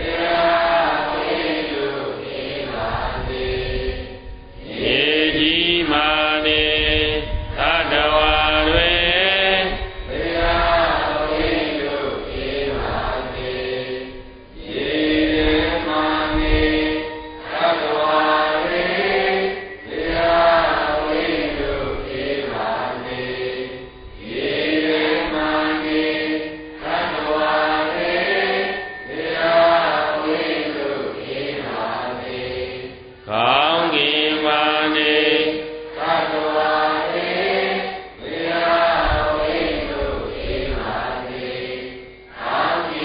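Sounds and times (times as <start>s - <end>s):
devotional chanting: 0.0s - 43.0s.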